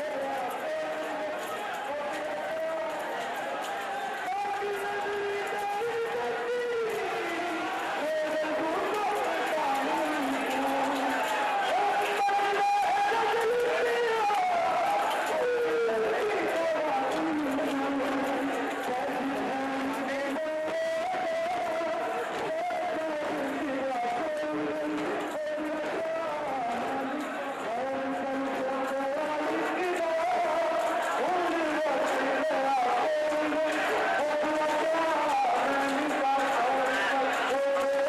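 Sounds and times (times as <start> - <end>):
man chanting a lament: 0.0 - 3.2, 4.2 - 38.0
crowd noise: 0.0 - 38.0.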